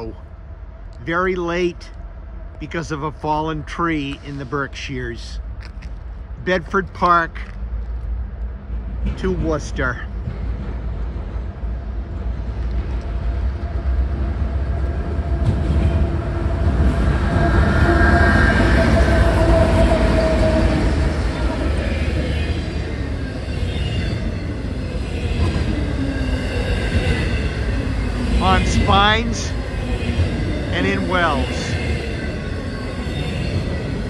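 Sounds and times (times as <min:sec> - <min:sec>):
diesel locomotive engine drone: 0:00.0 - 0:34.0
freight cars rolling on rails: 0:00.0 - 0:34.0.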